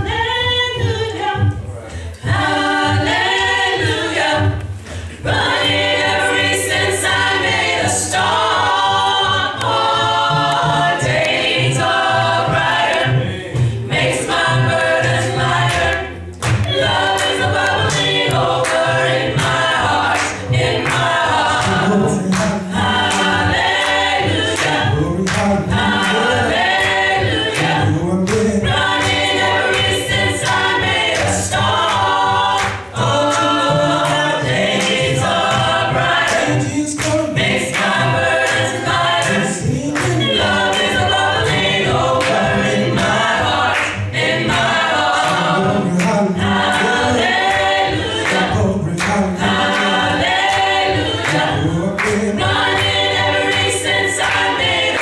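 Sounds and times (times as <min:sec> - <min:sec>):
gospel choir singing: 0:00.0 - 0:55.0.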